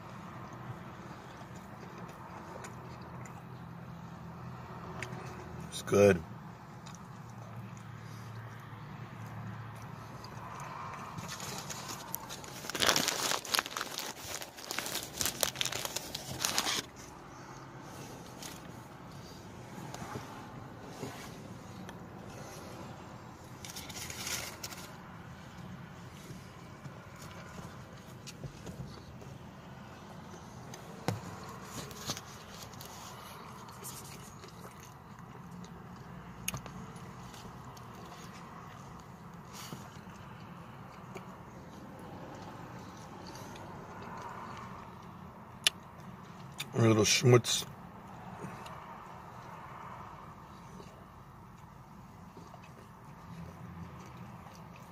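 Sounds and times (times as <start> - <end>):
paper wrapper crinkling: 11.2 - 17.0, 23.6 - 25.0.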